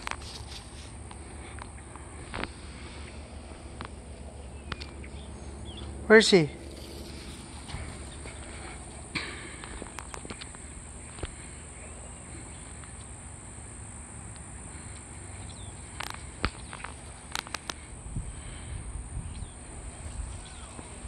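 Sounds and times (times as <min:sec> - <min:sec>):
high insect drone: 0:00.0 - 0:21.0.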